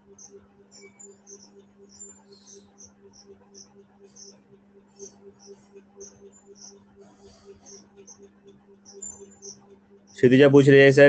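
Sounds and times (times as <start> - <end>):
high-pitched chirps: 0.0 - 4.4, 5.0 - 6.9, 7.5 - 10.3
soft rapid pulsing: 0.0 - 11.0
steady low hum: 0.0 - 11.0.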